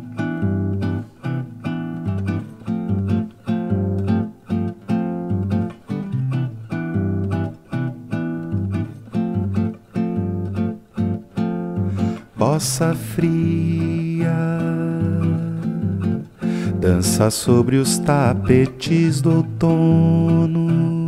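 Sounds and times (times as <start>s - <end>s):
nylon-string guitar playing: 0.0s - 21.0s.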